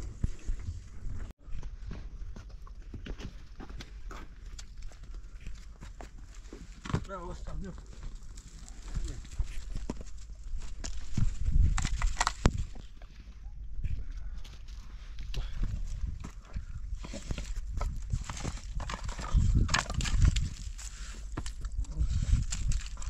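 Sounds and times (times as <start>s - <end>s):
footsteps crunching on stony ground: 0.0s - 23.0s.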